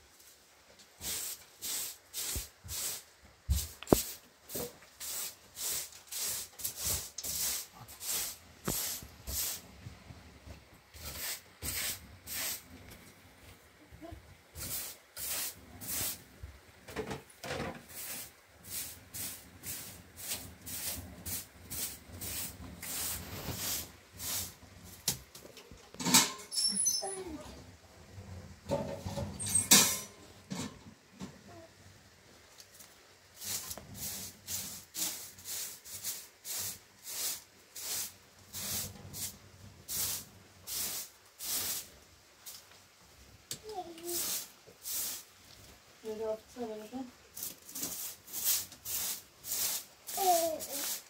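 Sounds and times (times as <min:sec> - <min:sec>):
broom sweeping a tiled floor: 0:00.0 - 0:31.7, 0:32.4 - 0:51.0.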